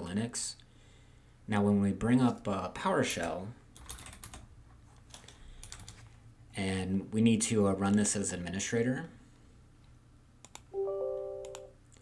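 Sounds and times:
faint typing on computer keyboard: 0:03.2 - 0:06.1, 0:10.4 - 0:10.7.

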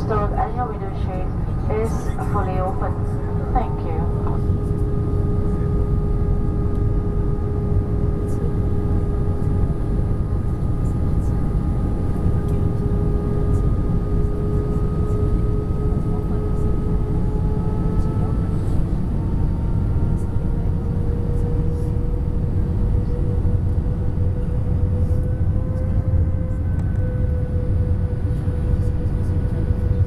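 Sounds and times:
aircraft cabin airflow rush: 0:00.0 - 0:30.0
jet engines humming: 0:00.0 - 0:30.0.

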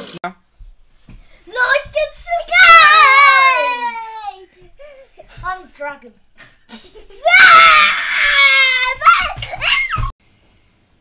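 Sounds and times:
child screaming and shrieking: 0:02.3 - 0:04.5, 0:06.7 - 0:10.1.

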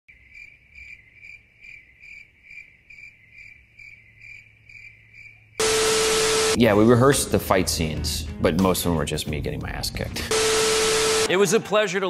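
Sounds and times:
cricket chirping: 0:00.1 - 0:05.6.

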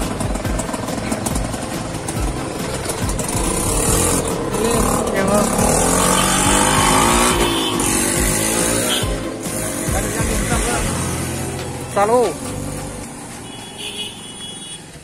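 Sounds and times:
auto-rickshaw engine: 0:00.0 - 0:15.0
road rumble: 0:00.0 - 0:15.0.

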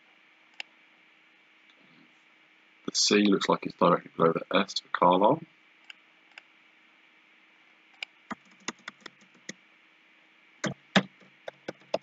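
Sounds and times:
faint steady hum: 0:00.0 - 0:12.0
keyboard key clicks: 0:10.6 - 0:12.0.

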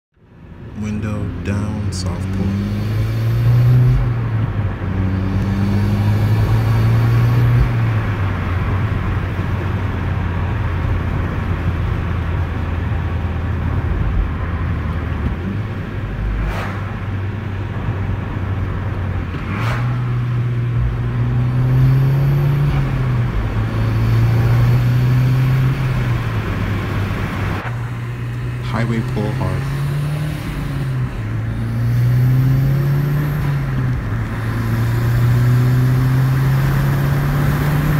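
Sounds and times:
road and wind noise: 0:00.1 - 0:37.9
car engine accelerating: 0:00.7 - 0:37.9.

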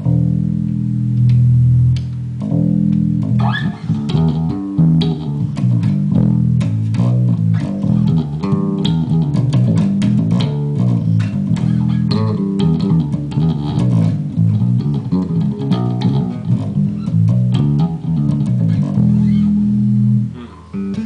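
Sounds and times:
electric bass plucked notes: 0:00.0 - 0:21.0.

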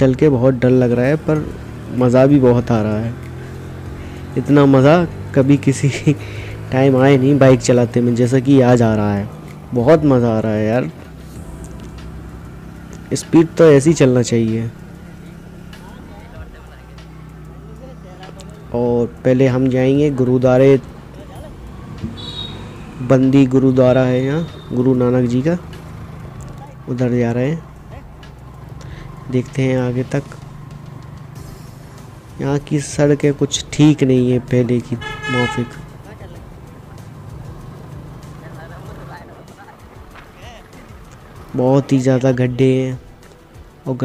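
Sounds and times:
motorcycle engine running: 0:00.0 - 0:44.0
wind and road noise: 0:00.0 - 0:44.0
short horn toot: 0:22.1 - 0:23.0, 0:35.0 - 0:35.9.

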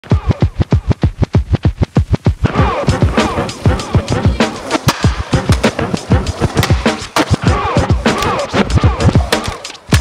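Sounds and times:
hip-hop beat with punchy drums: 0:00.0 - 0:10.0
turntable scratches: 0:00.0 - 0:10.0.

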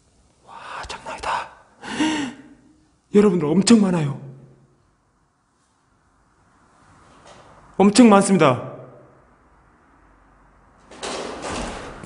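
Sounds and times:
man gasping: 0:01.8 - 0:02.8.

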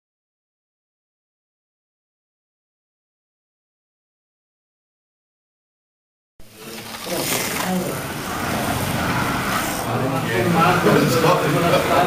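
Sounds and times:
slot car electric motors running: 0:06.5 - 0:12.0.

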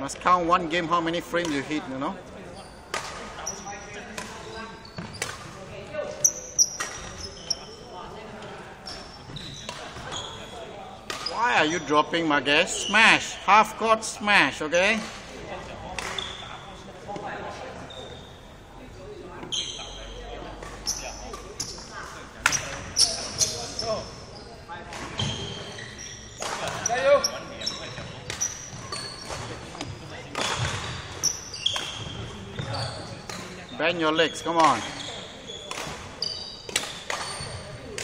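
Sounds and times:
rackets hitting shuttlecock: 0:01.4 - 0:01.8, 0:02.8 - 0:05.6, 0:06.6 - 0:07.2, 0:09.3 - 0:10.2, 0:11.0 - 0:11.4, 0:15.9 - 0:16.4, 0:20.6 - 0:21.8, 0:26.4 - 0:27.1, 0:27.9 - 0:33.6, 0:34.5 - 0:38.0
sneakers squeaking on wooden floor: 0:01.4 - 0:11.9, 0:16.0 - 0:18.6, 0:19.3 - 0:38.0.

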